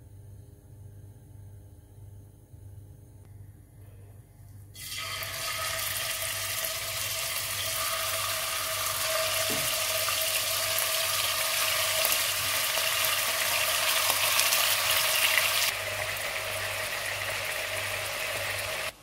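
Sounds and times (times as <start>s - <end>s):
beef sizzling in hot oil: 4.8s - 18.9s.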